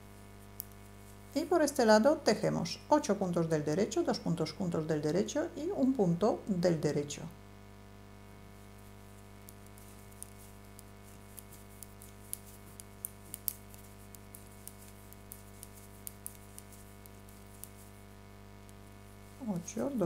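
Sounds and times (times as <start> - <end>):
knitting needles clicking: 9.4 - 17.9.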